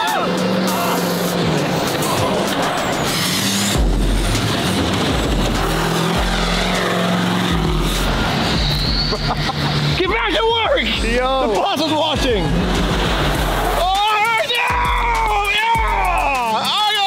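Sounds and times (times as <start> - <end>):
engine under heavy throttle: 0.0 - 10.9.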